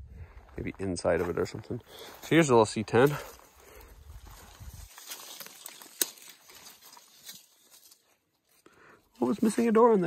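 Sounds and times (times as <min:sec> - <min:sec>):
leaves and twigs rustling: 0:00.3 - 0:10.0
twig snapping: 0:04.3 - 0:08.2.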